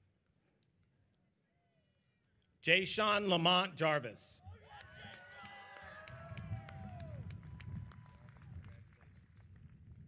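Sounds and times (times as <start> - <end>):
audience clapping and cheering: 4.6 - 10.0.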